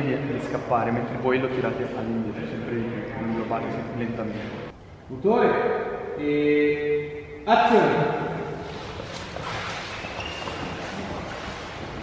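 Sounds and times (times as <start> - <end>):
body dragged on concrete: 8.6 - 12.0
shoes scraping and shuffling: 8.6 - 12.0.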